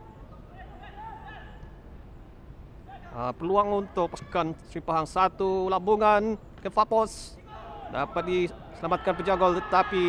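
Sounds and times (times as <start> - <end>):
faint shouts of players: 0.0 - 1.7, 7.4 - 10.0.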